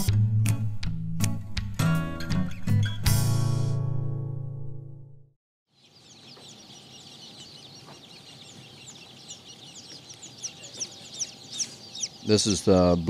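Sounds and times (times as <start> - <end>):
baby chicks peeping: 5.7 - 13.0.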